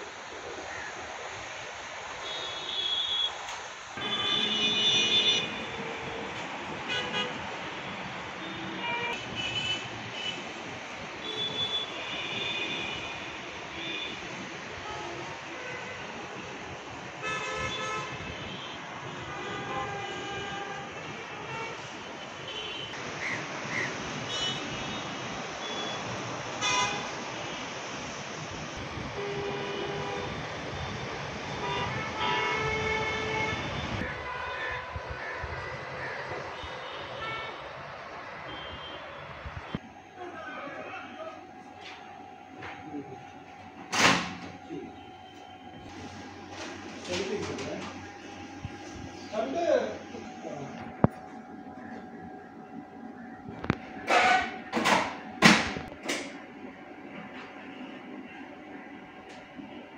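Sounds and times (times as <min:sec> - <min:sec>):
hum of traffic: 0:00.0 - 0:59.9
car horns honking: 0:04.0 - 0:07.5, 0:08.4 - 0:10.5, 0:11.2 - 0:14.2, 0:17.2 - 0:23.0, 0:26.6 - 0:27.1, 0:53.6 - 0:56.3.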